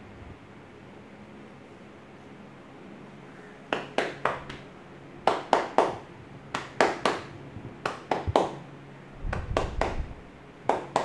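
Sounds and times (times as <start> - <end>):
hands slapping shoulders: 3.7 - 8.6, 9.2 - 11.0.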